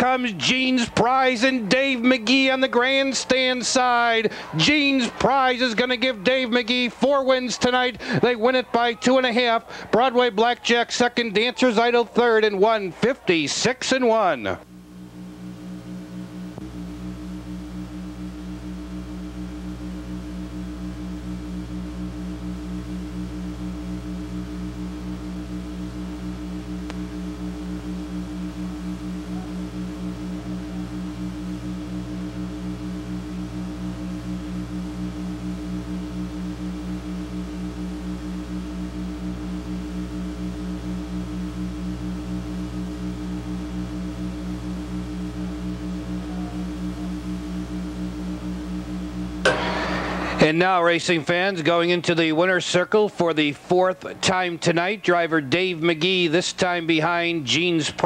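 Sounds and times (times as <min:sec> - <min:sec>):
low pulsing hum: 0:14.6 - 0:52.0.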